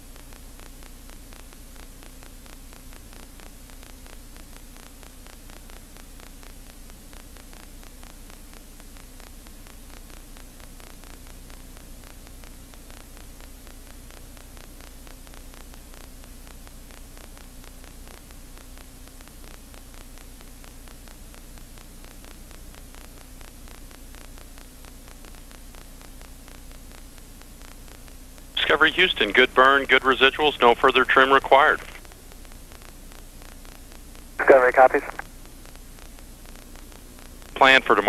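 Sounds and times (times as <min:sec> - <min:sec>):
static hiss with crackle: 0:00.0 - 0:38.0.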